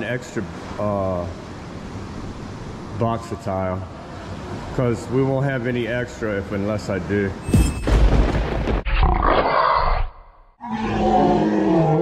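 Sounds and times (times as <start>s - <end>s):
tiger roar: 8.9s - 12.0s.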